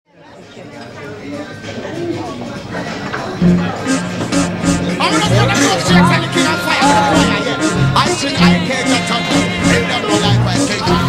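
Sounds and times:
people chattering in echoing space: 0.1s - 11.0s.

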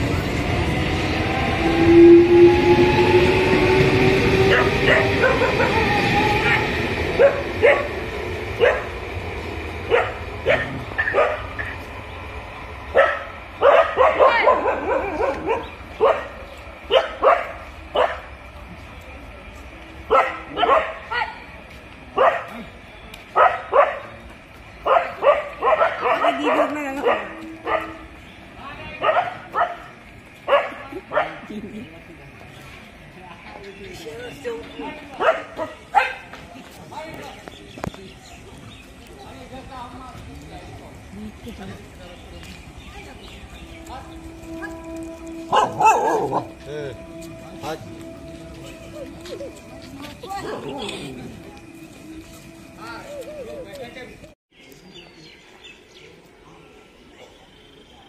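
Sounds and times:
electric train rumble and whine: 0.0s - 54.4s
dogs barking: 4.4s - 9.2s, 9.8s - 11.8s, 12.9s - 18.3s, 20.1s - 21.4s, 22.2s - 22.7s, 23.3s - 24.2s, 24.8s - 28.1s, 29.0s - 31.5s, 35.1s - 36.4s, 44.5s - 46.6s.

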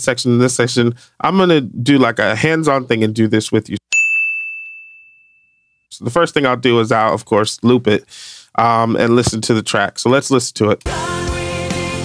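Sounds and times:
bright bell-like ding: 3.9s - 5.8s.

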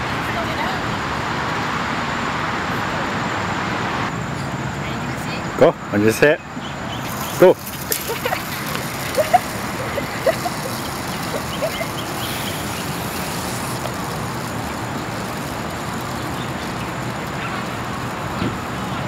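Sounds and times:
outdoor background noise: 0.0s - 19.0s
short high calls: 7.0s - 18.1s.

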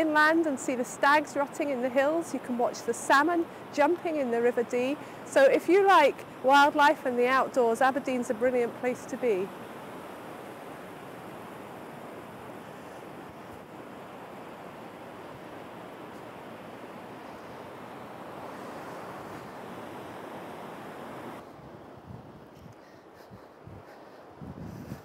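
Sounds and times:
surf breaking on a beach: 0.0s - 22.1s
thin wind noise: 0.0s - 25.0s.

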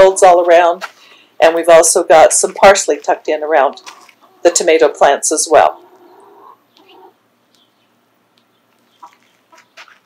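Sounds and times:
hens clucking: 3.6s - 7.7s, 8.7s - 10.0s.

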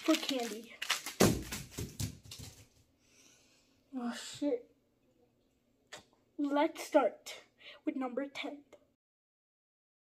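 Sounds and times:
knocks and rustles: 1.2s - 2.8s.

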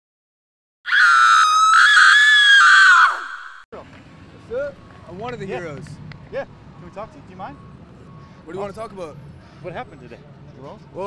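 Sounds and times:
high-pitched scream: 0.8s - 3.7s.

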